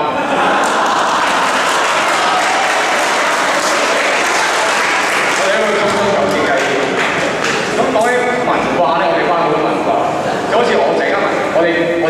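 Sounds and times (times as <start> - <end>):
many voices: 0.0 - 12.0
audience clapping: 0.4 - 8.2.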